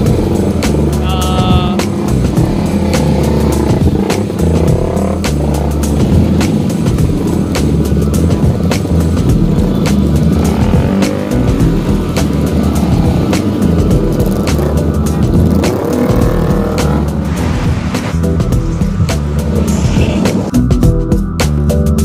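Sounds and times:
motorcycle engines revving past: 0:00.0 - 0:20.5
background music with steady beat: 0:00.0 - 0:22.0.

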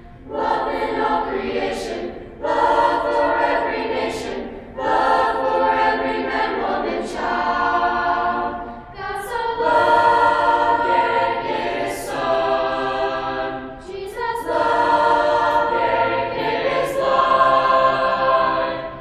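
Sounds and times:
choir singing a cappella: 0:00.0 - 0:19.0.

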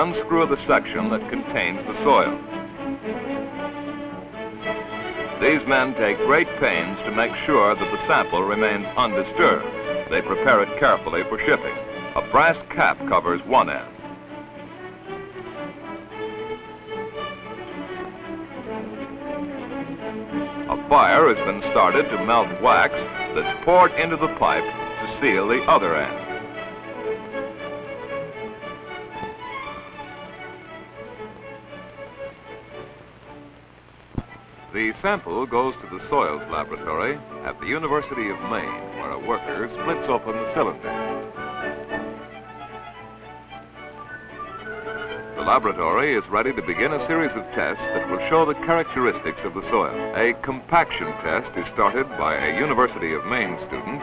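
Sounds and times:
orchestral string music: 0:00.0 - 0:54.0.

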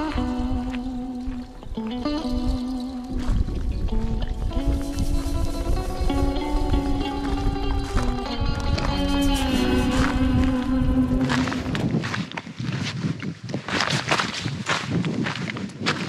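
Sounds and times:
background music with held notes: 0:00.0 - 0:12.0
footsteps on stony dirt track: 0:00.0 - 0:16.0.

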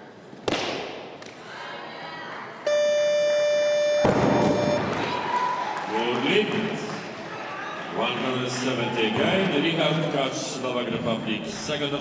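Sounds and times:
buzzer steady tone: 0:02.7 - 0:04.9.

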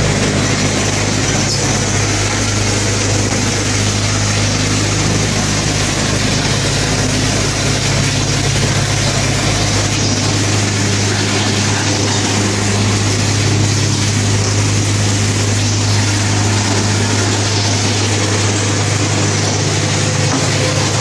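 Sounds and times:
vibrating machine table humming: 0:00.0 - 0:21.0.

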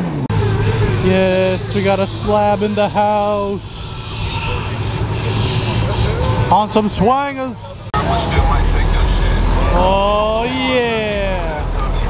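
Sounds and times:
car engine running low: 0:00.0 - 0:12.0
crowd chatter: 0:00.3 - 0:12.0.

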